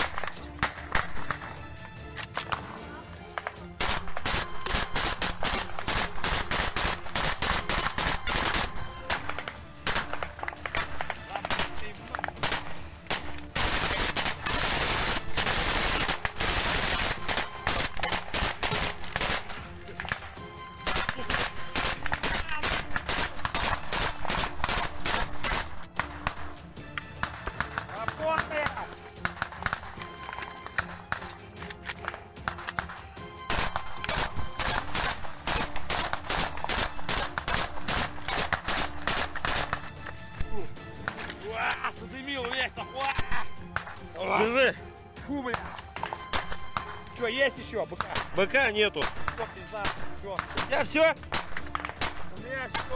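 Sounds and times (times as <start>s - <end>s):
automatic gunfire: 3.8s - 20.2s, 20.8s - 26.4s, 33.5s - 39.9s, 46.3s - 47.0s, 48.0s - 48.4s, 49.0s - 52.9s.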